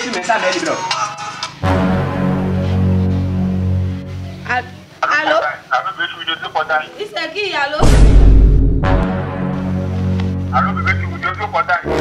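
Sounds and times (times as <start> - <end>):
background music: 0.0 - 5.3, 7.8 - 12.0.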